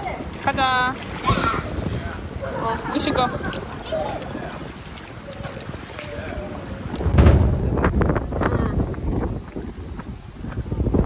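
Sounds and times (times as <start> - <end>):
water sloshing in pool: 0.0 - 7.3
faint voices: 0.0 - 9.4
wind gust buffeting microphone: 0.0 - 11.0.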